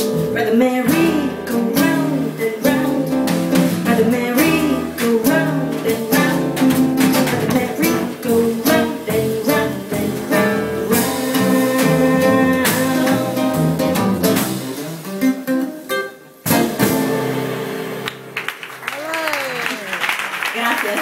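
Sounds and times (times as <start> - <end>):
percussion: 0.0 - 15.3
plucked double bass: 0.0 - 15.6
acoustic guitar playing: 0.0 - 18.8.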